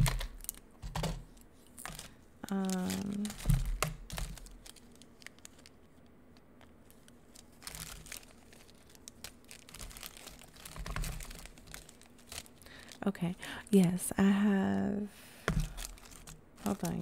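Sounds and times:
plastic bags crinkling: 0:00.0 - 0:05.8, 0:06.8 - 0:13.7, 0:15.5 - 0:17.0.

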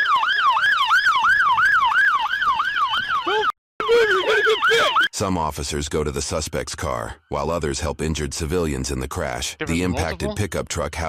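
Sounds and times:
police siren yelping: 0:00.0 - 0:05.1.

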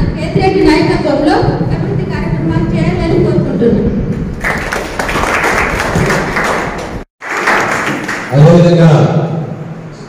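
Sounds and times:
people applauding: 0:04.4 - 0:08.7.

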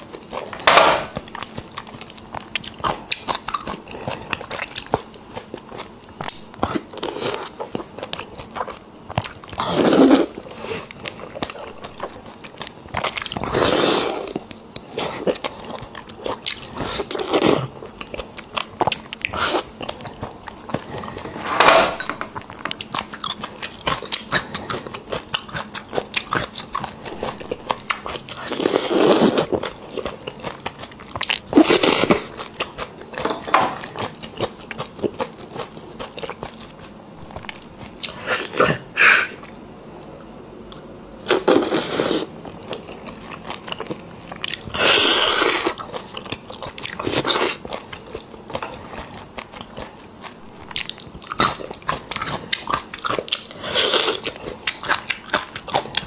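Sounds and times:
wet chewing and lip-smacking: 0:01.2 - 0:09.7, 0:22.4 - 0:33.2, 0:42.5 - 0:56.0.

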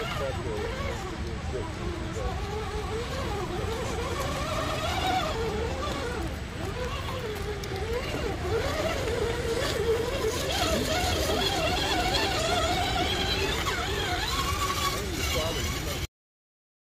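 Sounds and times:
toy car electric motor whining: 0:00.0 - 0:16.1.

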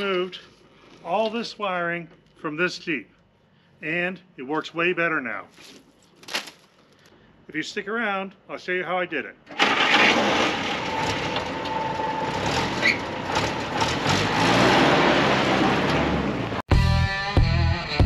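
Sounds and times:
rock music with electric guitar: 0:16.7 - 0:18.0.

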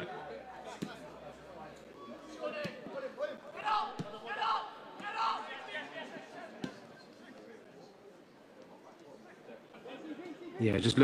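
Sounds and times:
people shouting: 0:03.5 - 0:06.0.

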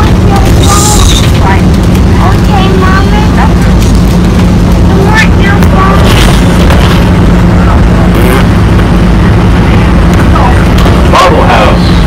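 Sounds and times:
bus engine rumble and road noise: 0:00.0 - 0:12.0
muffled passenger voices: 0:00.0 - 0:12.0.

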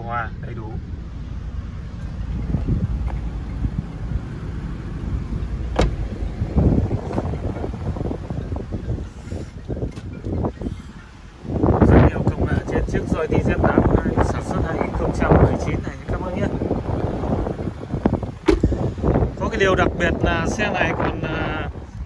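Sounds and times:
wind rumble on microphone: 0:00.0 - 0:22.0
dull knocks: 0:05.7 - 0:06.1, 0:18.4 - 0:18.8
microphone handling noise: 0:05.7 - 0:10.8, 0:16.6 - 0:19.4.

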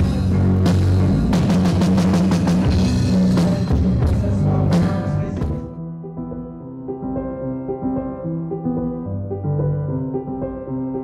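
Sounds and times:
drum kit hitting fast: 0:00.0 - 0:05.7
loud rock music: 0:00.0 - 0:05.8.

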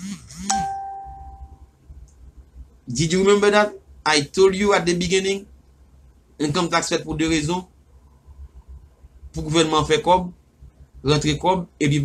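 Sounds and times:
bell ding: 0:00.5 - 0:01.6.

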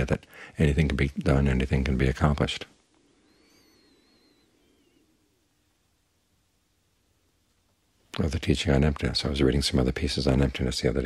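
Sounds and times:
faint high wavering whistle: 0:03.1 - 0:05.4.

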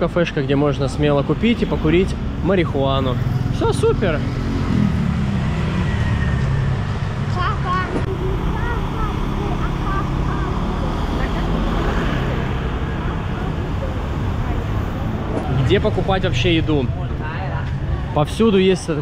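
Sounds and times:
motor scooter passing: 0:02.9 - 0:16.8.

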